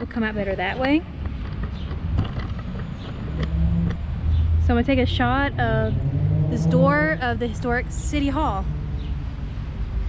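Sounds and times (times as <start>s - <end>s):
engine hum: 0.0s - 10.0s
road traffic rumble: 0.0s - 10.0s.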